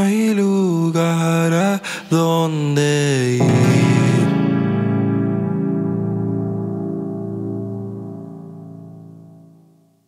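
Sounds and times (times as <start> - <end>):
guitar and keyboard chord ringing: 3.4 - 10.0.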